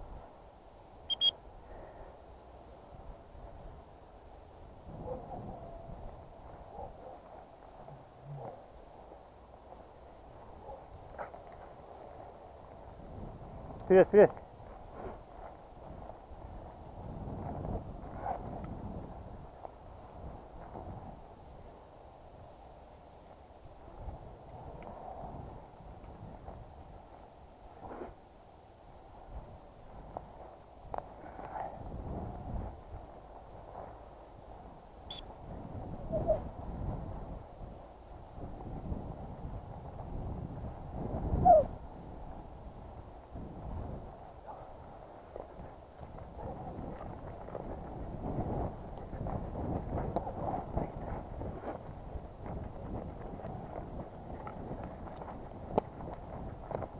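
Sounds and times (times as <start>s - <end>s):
footsteps through dry grass: 5.8s - 13.8s, 14.4s - 22.0s, 44.8s - 56.9s.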